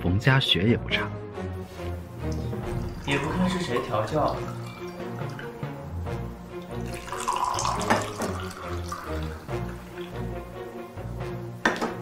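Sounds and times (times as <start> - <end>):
background music: 0.0 - 12.0
tea pouring into glasses: 1.8 - 11.8.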